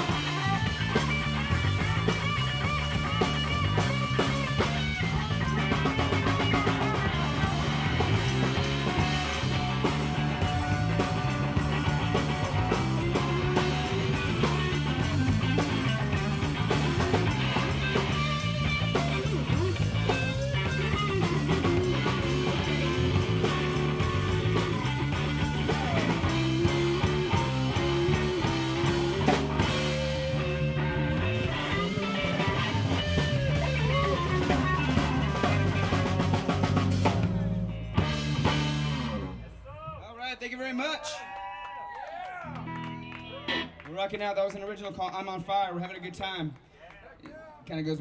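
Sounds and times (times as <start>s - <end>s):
live rock band: 0.0s - 39.9s, 42.4s - 44.6s
man talking: 39.4s - 41.2s, 43.8s - 48.0s.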